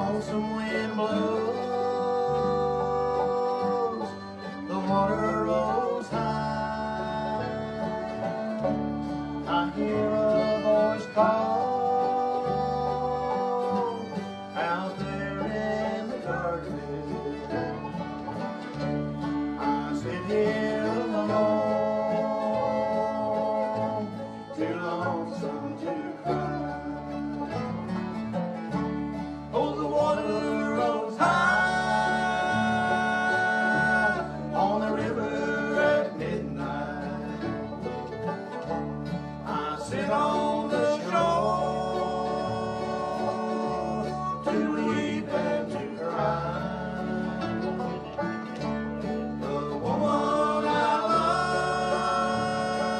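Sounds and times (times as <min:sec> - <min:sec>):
acoustic guitars: 0:00.0 - 0:52.9
banjo: 0:00.0 - 0:52.9
fiddle: 0:00.0 - 0:52.9
mandolin: 0:00.0 - 0:52.9
upright bass: 0:00.0 - 0:52.9.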